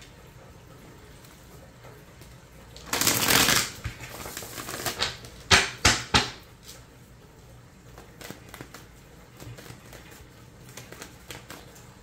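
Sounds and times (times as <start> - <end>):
cards riffle shuffling: 2.8 - 5.4, 7.9 - 11.9.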